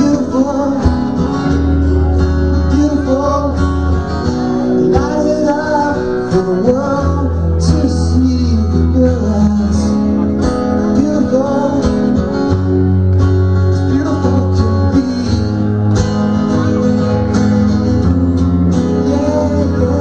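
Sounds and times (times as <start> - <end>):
guitar: 0.0 - 20.0
rock band playing live: 0.0 - 20.0.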